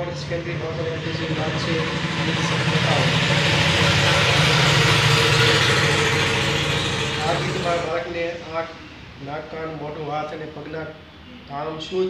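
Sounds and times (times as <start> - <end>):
vehicle engine passing: 0.0 - 9.6
steady low hum: 0.0 - 10.2.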